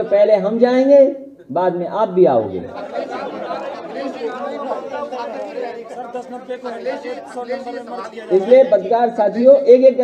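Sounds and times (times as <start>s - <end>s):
reporters calling out questions: 0.0s - 10.0s.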